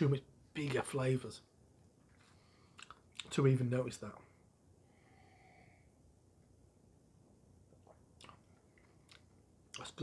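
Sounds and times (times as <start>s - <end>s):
soft mouth clicks: 2.7s - 3.3s, 7.8s - 9.9s.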